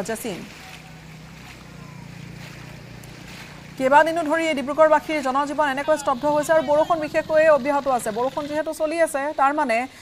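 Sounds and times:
engine hum: 0.0 - 10.0
water washing from wheels: 0.0 - 10.0.

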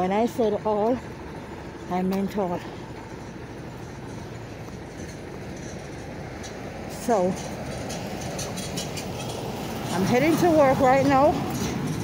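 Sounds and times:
low outdoor rumbling: 0.0 - 12.0.

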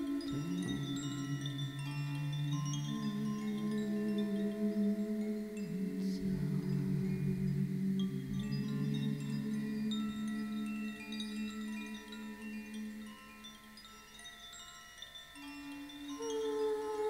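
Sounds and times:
wind chimes tinkling: 0.0 - 17.0.

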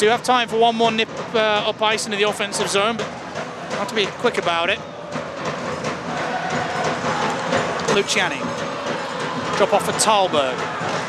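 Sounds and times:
arena noise: 0.0 - 11.0.

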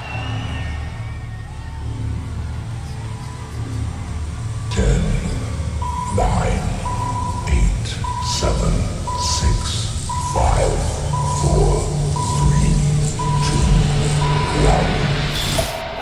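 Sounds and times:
rumbling bass build: 0.2 - 16.0
short high beeps: 5.8 - 15.6.

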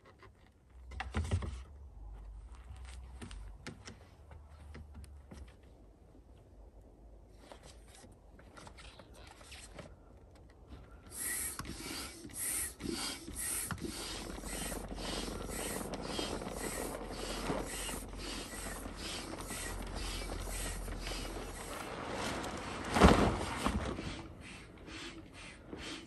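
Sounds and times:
hand air pump strokes: 11.1 - 21.9, 23.4 - 26.0.

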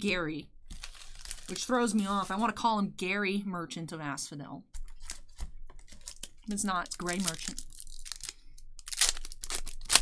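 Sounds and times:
foil wrapper tearing: 0.7 - 2.3, 5.0 - 10.0.

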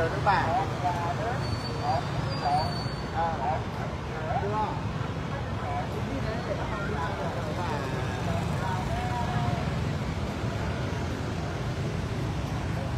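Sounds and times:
scooter engines rumbling: 0.0 - 12.9.

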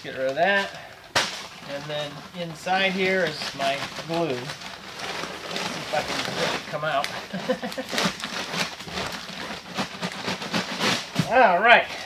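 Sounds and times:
paper and cardboard rustling: 0.0 - 12.0.

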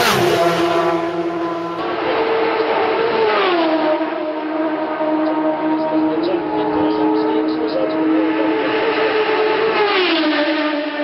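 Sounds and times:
racing motorcycle passing at speed: 0.0 - 11.0.

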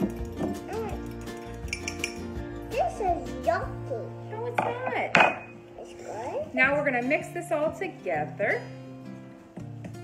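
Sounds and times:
background music: 0.0 - 10.0
cutlery clinking on ceramic dish: 1.1 - 2.3.

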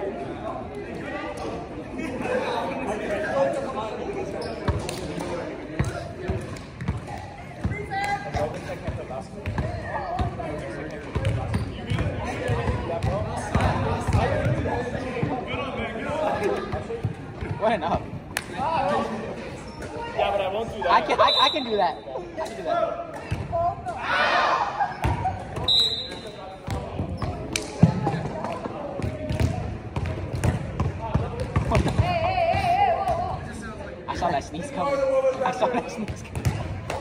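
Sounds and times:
indistinct chatter echoing: 0.0 - 37.0.

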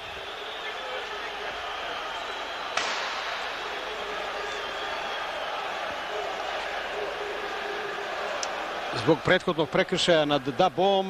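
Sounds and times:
stadium crowd noise: 0.0 - 11.0
sharp knock: 2.8 - 4.9.

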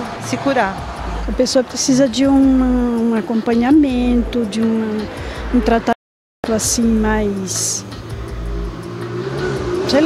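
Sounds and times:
woman speaking: 0.0 - 7.9
vehicle engine humming: 0.0 - 10.0.

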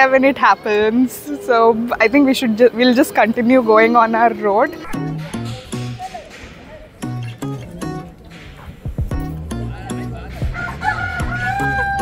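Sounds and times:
recorded rooster crowing: 10.5 - 12.0.

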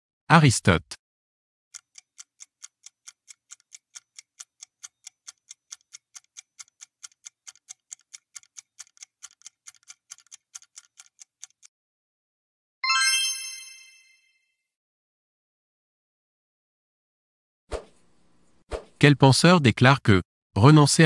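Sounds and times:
ticking countdown timer: 1.7 - 11.7.

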